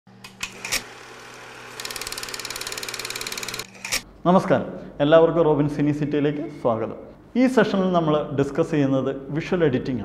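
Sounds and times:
fast mechanical clatter: 1.7s - 4.0s.

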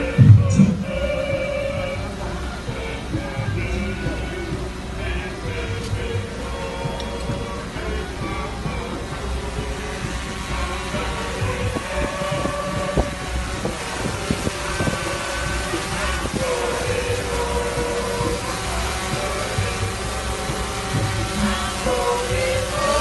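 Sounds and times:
wind rumble on microphone: 0.0s - 2.1s, 8.2s - 21.6s
group of people singing: 0.0s - 23.0s.

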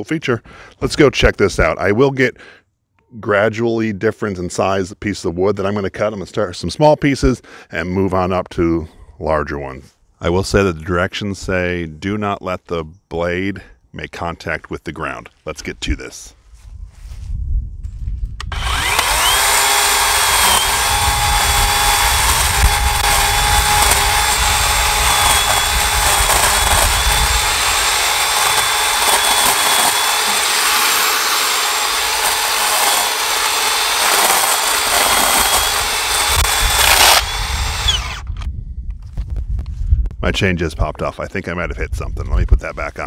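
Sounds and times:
electric chainsaw motor whining: 18.4s - 38.5s
chain cutting dry brush: 21.4s - 36.3s.

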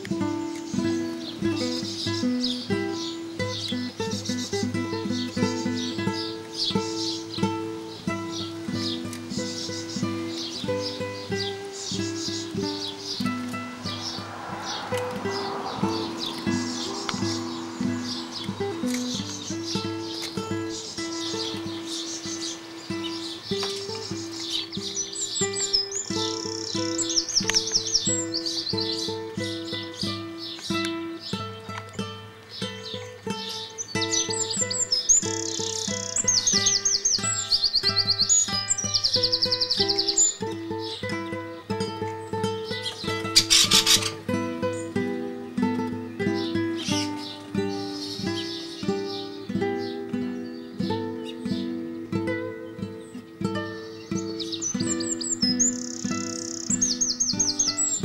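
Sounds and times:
classical guitar music: 0.0s - 58.0s
songbirds trilling: 0.0s - 58.0s.

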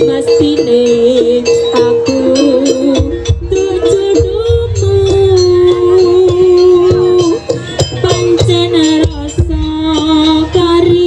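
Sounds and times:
wavering held melody: 0.0s - 11.0s.

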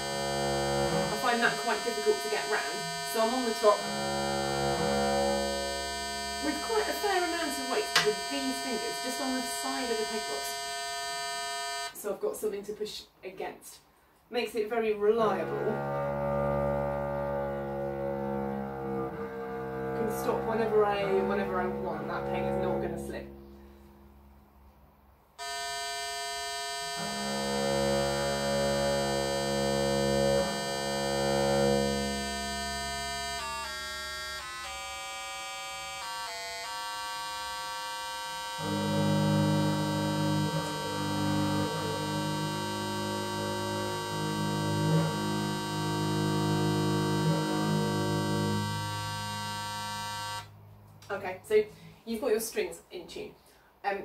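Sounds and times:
string pitch stepping down: 0.0s - 11.9s, 15.2s - 24.5s, 25.4s - 50.6s
bowed viol strings: 0.0s - 12.0s, 14.8s - 24.5s, 25.4s - 51.8s
steady electronic drone: 0.0s - 12.0s, 15.2s - 24.4s, 25.4s - 50.6s.

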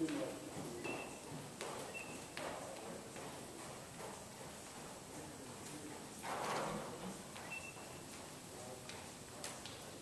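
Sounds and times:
hoofbeats on dirt: 0.0s - 9.7s.

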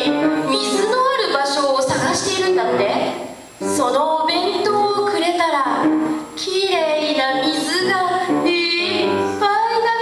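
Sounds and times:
girl singing: 0.0s - 2.7s, 3.7s - 10.0s.

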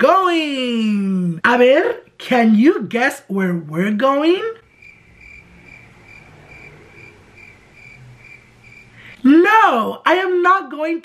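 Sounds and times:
cricket chirping: 4.6s - 9.2s.

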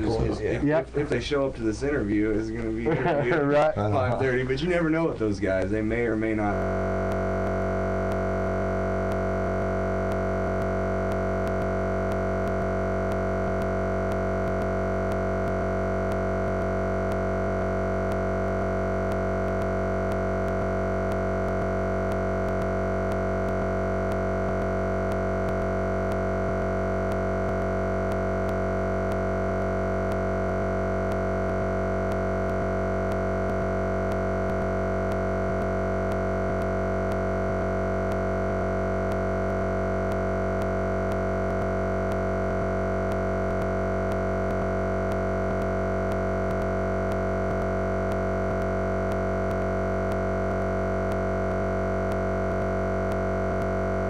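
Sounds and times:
steady electronic drone: 5.9s - 54.0s.

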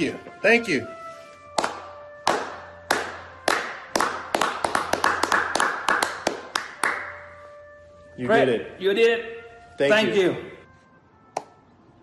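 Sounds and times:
hand claps: 1.5s - 7.3s, 11.3s - 11.6s.

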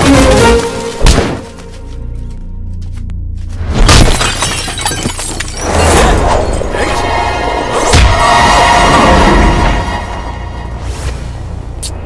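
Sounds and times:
film background score: 0.0s - 12.0s.

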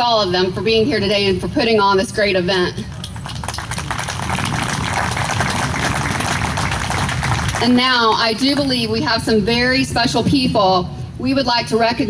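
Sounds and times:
audience applauding: 2.9s - 8.8s.

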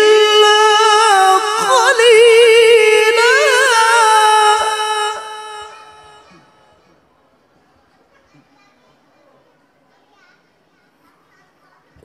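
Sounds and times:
man reciting melodically: 0.0s - 6.6s.

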